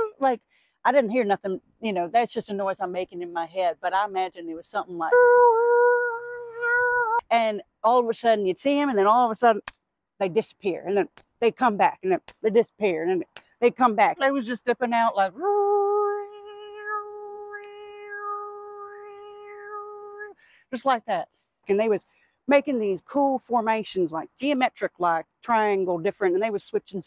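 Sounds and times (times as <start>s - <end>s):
woman singing a high ooo tone: 0.0s - 0.3s, 5.0s - 7.3s, 15.0s - 20.4s.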